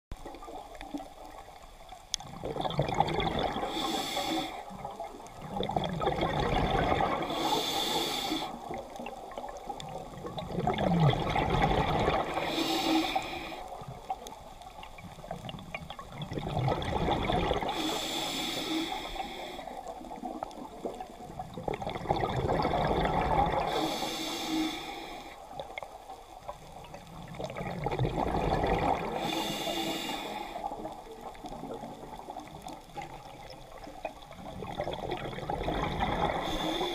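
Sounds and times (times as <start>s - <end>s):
rush of bubbles: 2.2s - 14.1s, 14.9s - 18.2s, 19.8s - 24.3s, 26.8s - 36.9s
regulator inhale hiss: 3.6s - 4.8s, 7.2s - 8.8s, 12.3s - 14.0s, 17.6s - 20.2s, 23.6s - 25.6s, 29.1s - 31.0s, 36.3s - 36.9s.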